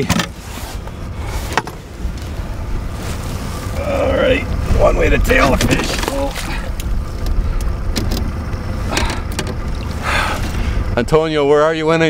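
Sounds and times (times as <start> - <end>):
boat engine idling: 0.0 - 12.0
water splashing: 2.7 - 7.6.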